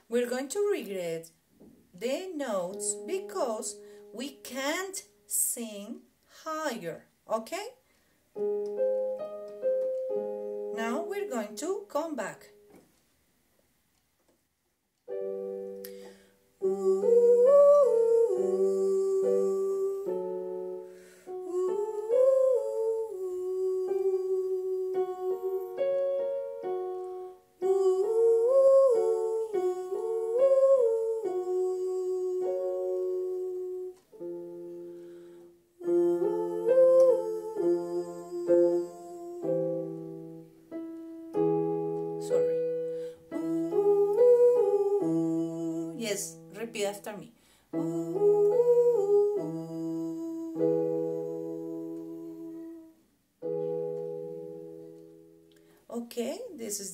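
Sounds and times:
electronic keyboard chords: 0:08.4 - 0:11.7, 0:50.6 - 0:55.6
woman singing vocal exercise: 0:10.7 - 0:12.5, 0:16.6 - 0:20.5, 0:21.3 - 0:26.1, 0:27.6 - 0:34.1, 0:35.8 - 0:40.0, 0:43.2 - 0:53.0.

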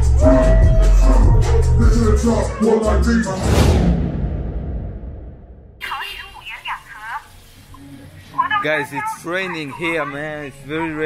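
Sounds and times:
wet street background: 0:05.8 - 0:11.0
high voice: 0:08.4 - 0:11.0.

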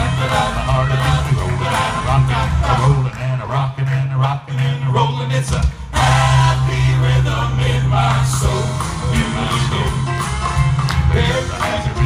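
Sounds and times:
instrumental accompaniment with bass: 0:00.0 - 0:12.0
male quartet singing in harmony: 0:00.0 - 0:12.0.

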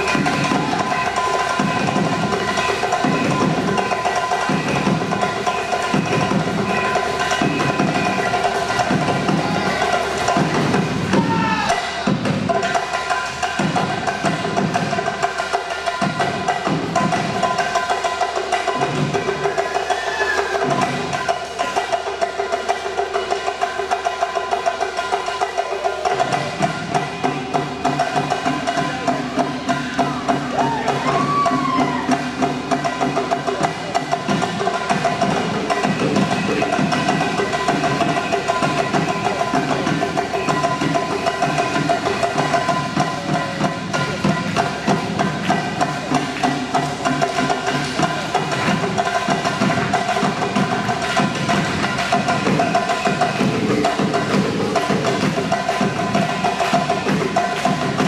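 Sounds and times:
folk band playing dance music: 0:00.0 - 0:58.0
wood-block-like percussion strokes: 0:00.0 - 0:58.0.

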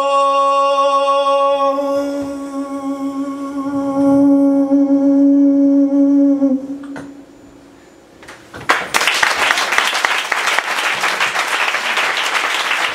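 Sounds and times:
man singing held note: 0:00.0 - 0:07.2
audience applause: 0:08.7 - 0:12.9.

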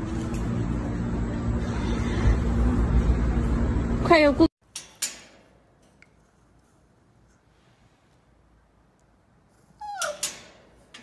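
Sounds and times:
puppy whining: 0:09.6 - 0:10.6.

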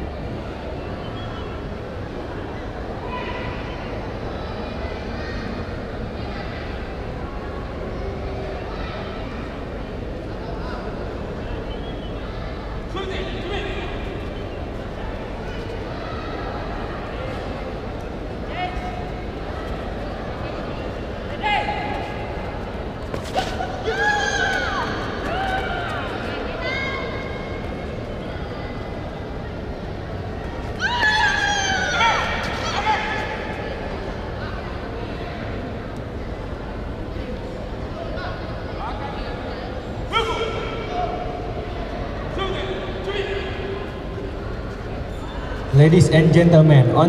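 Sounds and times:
crowd murmur: 0:00.0 - 0:47.0.

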